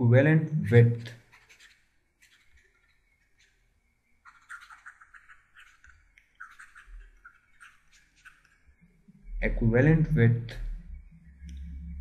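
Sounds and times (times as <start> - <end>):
stylus scratching on tablet: 0.7 - 3.6, 4.2 - 8.7.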